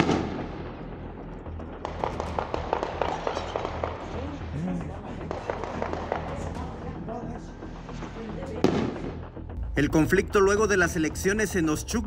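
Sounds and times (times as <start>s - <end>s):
loud echoing gunshot: 0.0s - 0.8s, 8.6s - 9.2s
rapid gunfire cracks: 1.8s - 4.1s, 5.2s - 6.6s.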